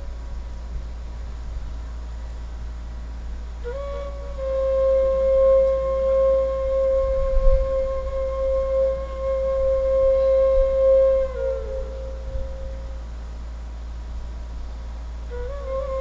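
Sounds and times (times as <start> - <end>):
flute holding long note: 0.0 - 14.0, 15.1 - 16.0
steady low hum: 0.0 - 16.0.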